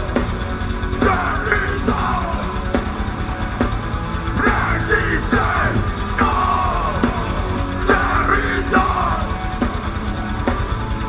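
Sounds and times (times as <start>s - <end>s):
drum kit with bass drum: 0.0s - 11.0s
electric guitar: 0.0s - 11.0s
loud heavy rock band: 0.0s - 11.0s.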